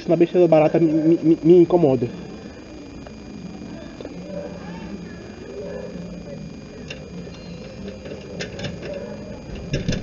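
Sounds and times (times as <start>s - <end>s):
muffled indistinct voices: 0.0s - 10.0s.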